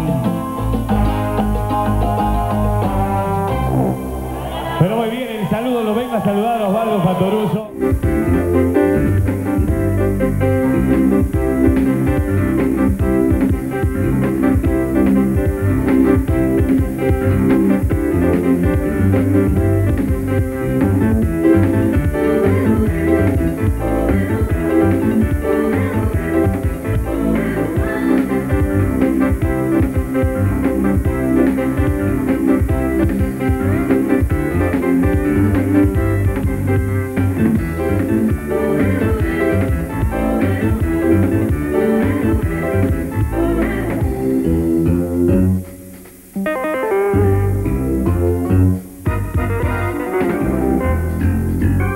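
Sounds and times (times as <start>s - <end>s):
drum kit playing a groove: 0.0s - 3.9s, 7.7s - 51.9s
electric bass: 0.0s - 4.9s, 7.7s - 51.9s
instrumental band music: 0.0s - 5.2s, 7.2s - 51.9s
keyboards: 0.0s - 51.9s.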